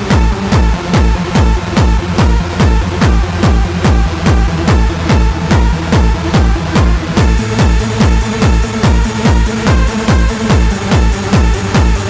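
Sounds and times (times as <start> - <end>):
hardcore techno music: 0.0 - 12.0.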